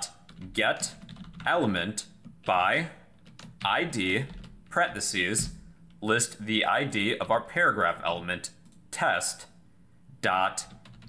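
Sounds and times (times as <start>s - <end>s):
man speaking: 0.0s - 9.6s, 10.2s - 10.8s.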